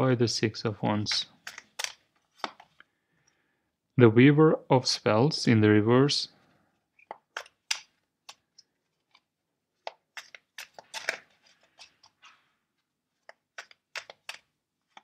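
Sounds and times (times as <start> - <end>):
cards being shuffled: 1.0 - 2.9, 7.0 - 15.0.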